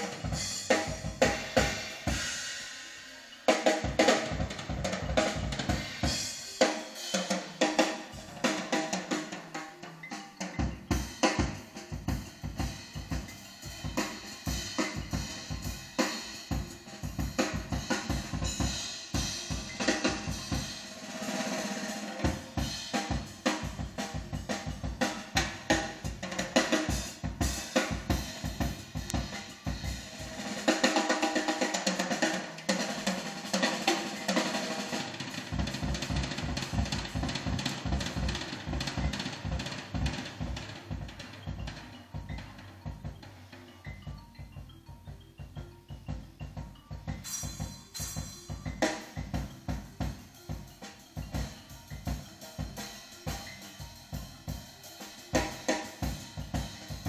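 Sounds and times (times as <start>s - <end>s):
drum kit playing: 0.0s - 57.0s.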